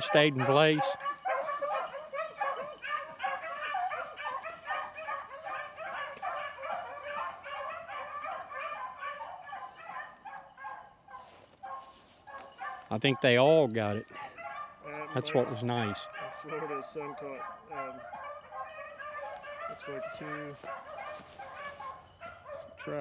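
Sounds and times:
beagles baying in chorus: 0.0 - 23.0.

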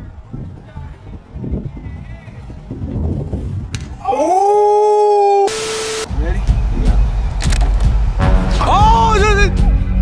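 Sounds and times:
wind rumble on microphone: 0.0 - 4.3
sharp click: 7.4 - 7.9.

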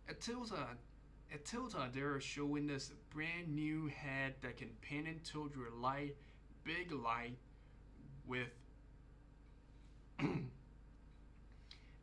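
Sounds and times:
man clearing his throat: 10.2 - 10.6.

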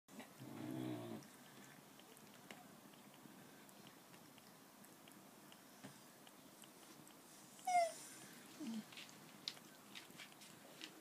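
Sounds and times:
puppy lapping food: 1.2 - 11.0
puppy whimper: 7.6 - 8.9.

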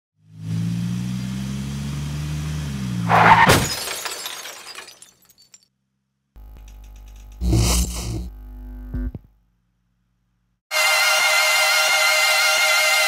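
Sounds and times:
loud crash: 3.1 - 5.0.

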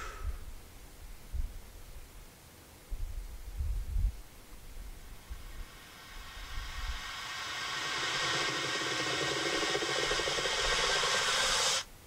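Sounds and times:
rising hiss-like noise swell: 4.2 - 11.9.

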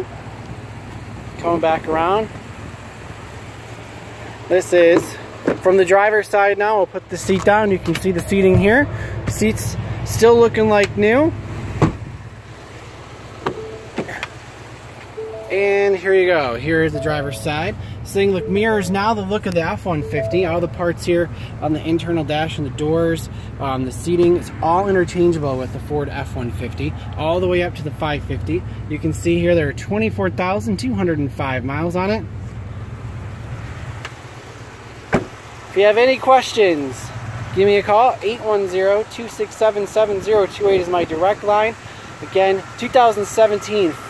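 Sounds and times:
truck engine idling: 0.0 - 44.0.

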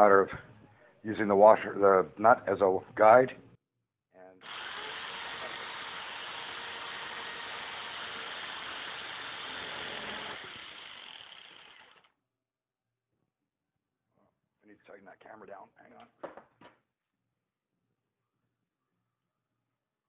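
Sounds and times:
electric jigsaw cutting steel rod: 4.4 - 12.1.

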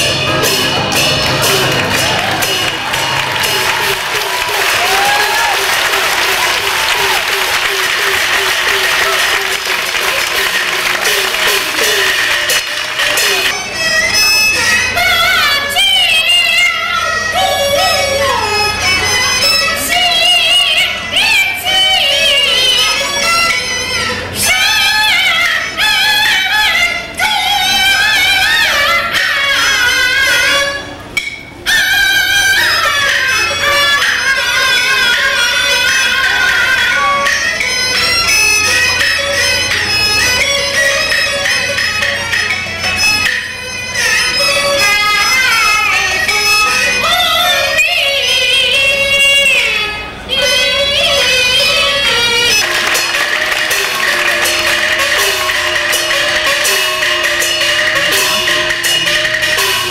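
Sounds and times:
sharp percussion strikes: 0.0 - 15.0, 29.8 - 47.8, 51.1 - 59.9
opera music wavering melody: 0.0 - 59.9.

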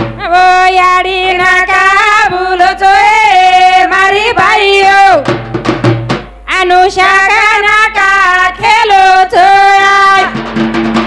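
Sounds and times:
drum beat: 0.0 - 0.6, 4.3 - 6.5, 10.2 - 11.0
woman singing into microphone: 0.0 - 5.3, 6.5 - 10.4.

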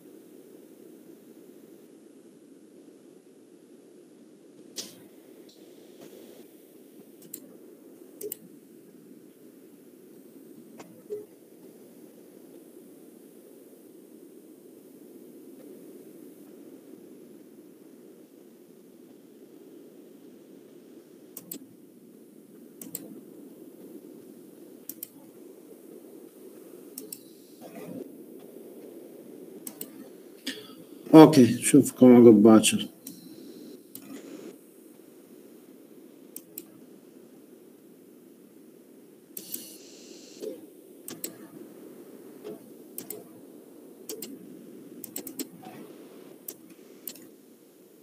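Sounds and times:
low room hum: 0.0 - 48.0
sharp clicks: 7.2 - 7.5, 8.2 - 8.5, 21.4 - 21.6, 22.8 - 23.1, 24.9 - 25.2, 27.0 - 27.3, 29.6 - 30.7, 39.4 - 39.8, 40.4 - 41.4, 43.0 - 43.3, 44.1 - 44.4, 45.0 - 45.6, 46.4 - 47.3.

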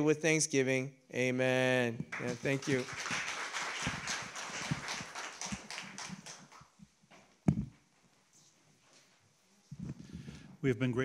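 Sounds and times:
congregation applauding: 2.1 - 6.8.

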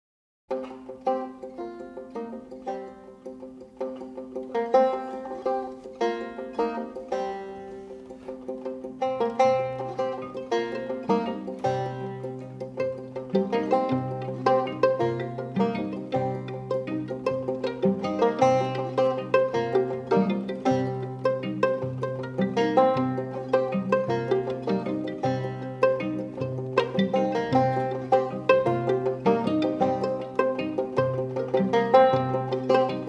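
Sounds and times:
banjo picking: 0.5 - 33.0.

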